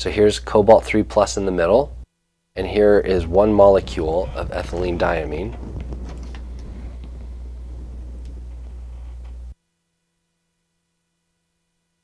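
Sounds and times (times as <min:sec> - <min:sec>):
low background hum: 0:00.0 - 0:11.3.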